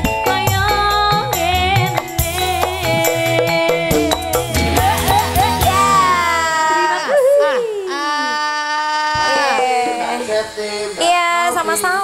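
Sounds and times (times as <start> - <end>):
girl singing into a microphone: 0.2 - 7.1.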